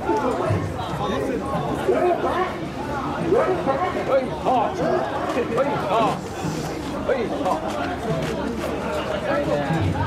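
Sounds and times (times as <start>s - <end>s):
crowd chanting and shouting: 0.0s - 10.0s.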